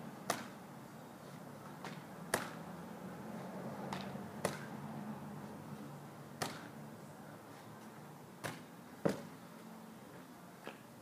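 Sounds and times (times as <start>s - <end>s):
medicine ball smacking: 0.2s - 0.6s, 1.8s - 2.6s, 3.9s - 4.7s, 6.4s - 6.7s, 8.4s - 9.3s.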